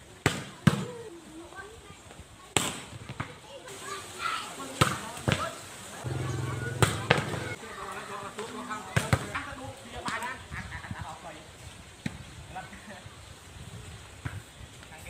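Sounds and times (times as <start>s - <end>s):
players calling and shouting: 6.0s - 7.7s
volleyball being struck: 6.1s - 7.6s.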